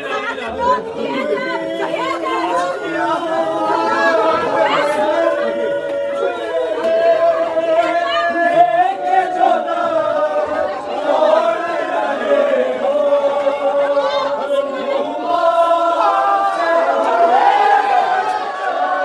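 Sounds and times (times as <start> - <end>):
lead reciter chanting: 0.0 - 19.0
men chanting a lament: 0.0 - 19.0.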